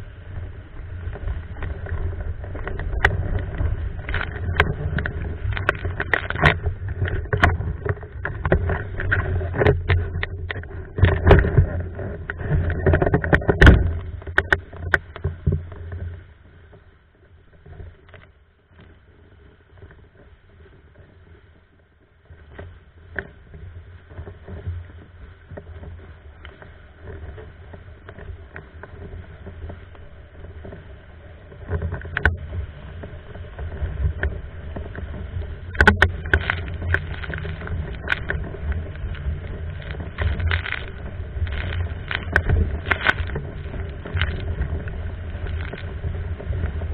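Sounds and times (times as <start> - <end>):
board hull slapping water: 0.0 - 46.9
rush of water and wind: 0.0 - 46.9
board knocks and splashes: 35.8 - 44.6.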